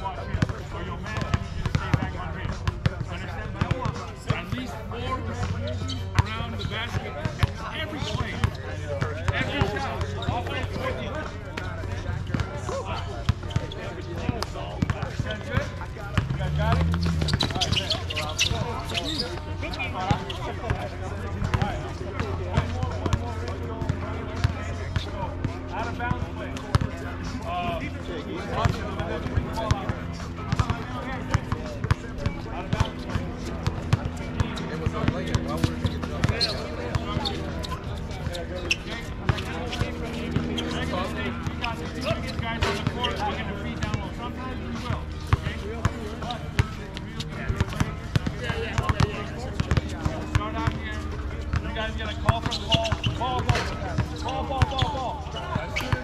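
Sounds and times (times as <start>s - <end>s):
basketballs bouncing on hard court: 13.3s - 19.2s, 30.5s - 38.3s, 46.6s - 46.8s, 47.4s - 50.8s, 52.4s - 54.9s.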